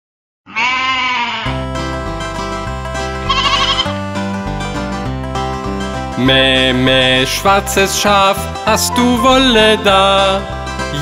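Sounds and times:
sheep bleating: 0.5 - 1.6, 3.2 - 4.0
upbeat instrumental children's music: 1.5 - 11.0.

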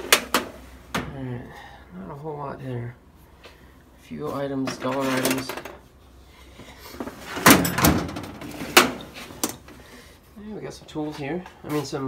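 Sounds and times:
tools rattling: 4.6 - 5.8, 7.0 - 9.7
tool chest drawers sliding: 4.7 - 5.7, 7.0 - 9.6.

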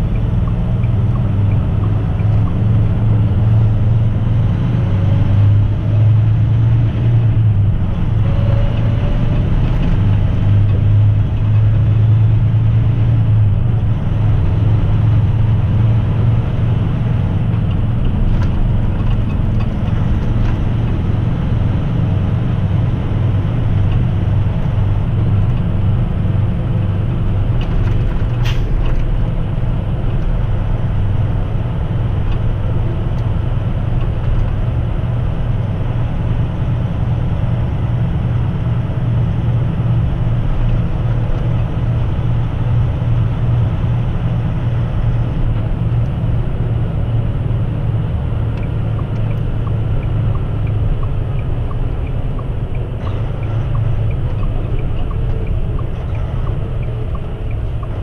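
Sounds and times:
truck engine and tyre drone: 0.0 - 58.0.

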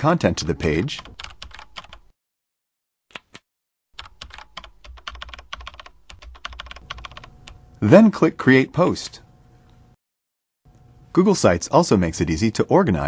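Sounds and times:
typing on computer keyboard: 1.0 - 2.0, 4.0 - 7.3.

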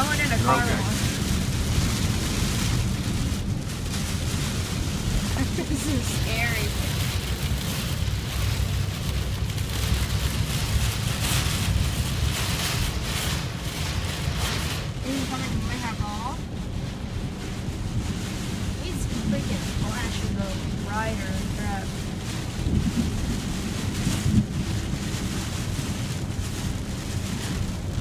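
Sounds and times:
heavy rain on windshield: 0.0 - 28.0
road and wind rumble: 0.0 - 28.0.

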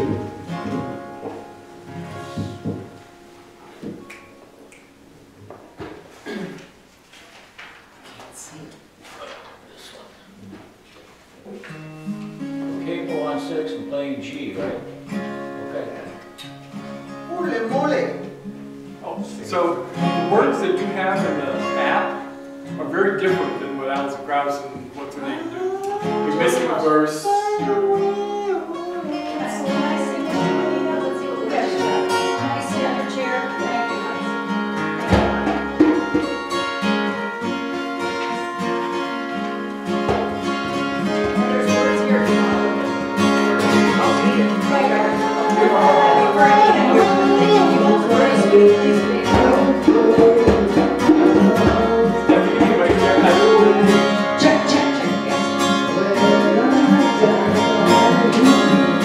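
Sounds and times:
acoustic guitar: 0.0 - 59.0
voices singing: 24.8 - 59.0
sustained instruments: 25.2 - 59.0.

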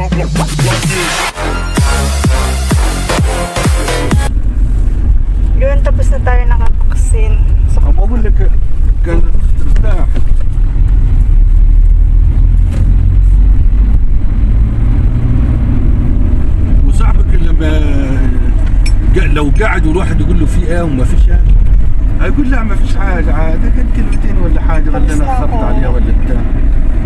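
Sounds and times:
people talking: 0.0 - 1.1, 5.6 - 10.2, 16.8 - 21.6, 22.2 - 26.5
car road rumble inside cabin: 0.0 - 27.0.

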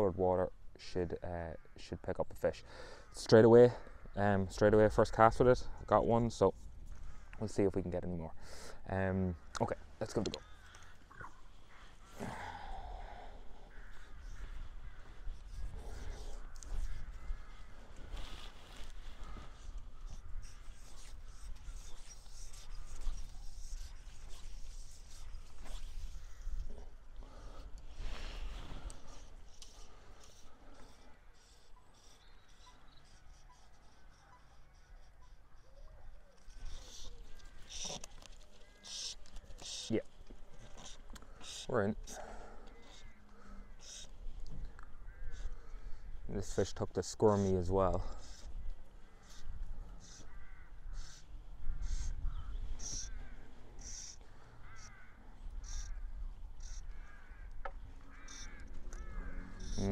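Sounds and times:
birds calling: 1.4 - 59.9.

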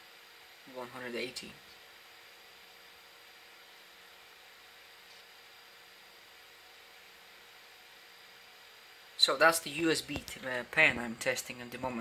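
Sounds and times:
faint steady hiss: 0.0 - 12.0
faint steady hum: 0.0 - 12.0.

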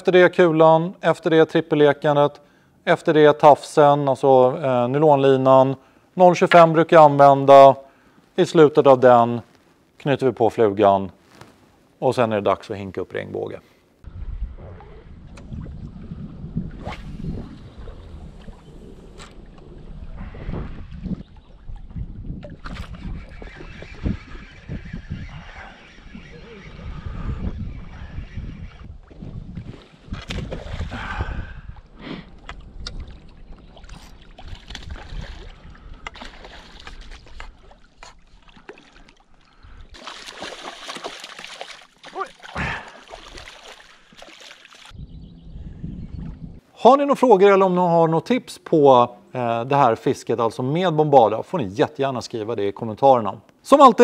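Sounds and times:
wind buffeting microphone: 14.0 - 38.4, 44.9 - 46.7
fish splashing at surface: 40.0 - 44.9.

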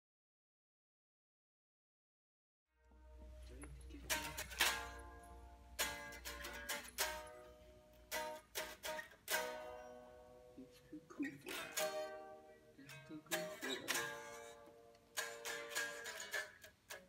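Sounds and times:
clean electric guitar chords: 2.8 - 10.7.

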